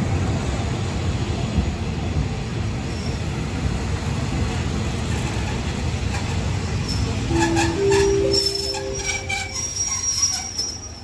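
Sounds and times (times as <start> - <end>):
train coaches rumbling: 0.0 - 11.0
train brakes squealing: 2.9 - 3.4, 5.4 - 11.0
high thin whistle: 7.3 - 10.8.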